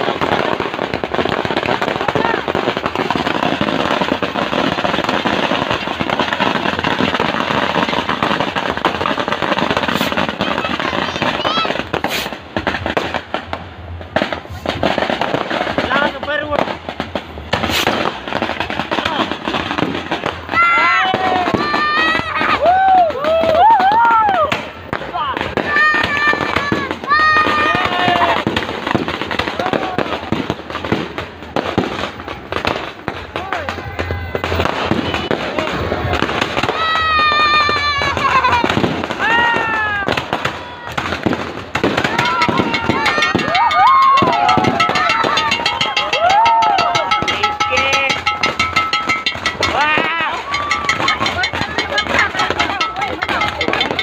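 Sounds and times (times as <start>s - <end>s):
fireworks bangs and crackle: 0.0s - 54.0s
voices calling out: 0.1s - 12.8s, 18.0s - 54.0s.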